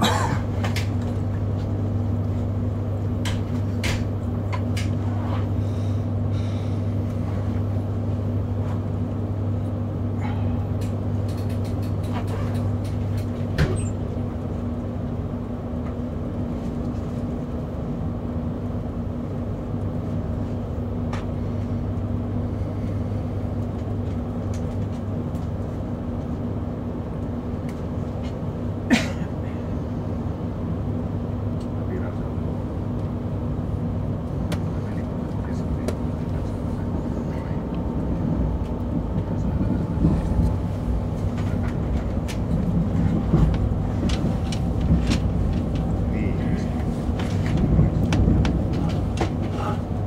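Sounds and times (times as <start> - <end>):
train cabin low hum: 0.0 - 50.0.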